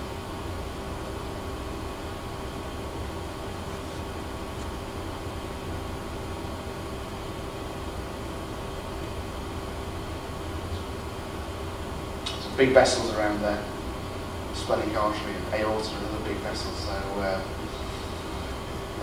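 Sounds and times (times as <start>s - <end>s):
background hum and hiss: 0.0s - 19.0s.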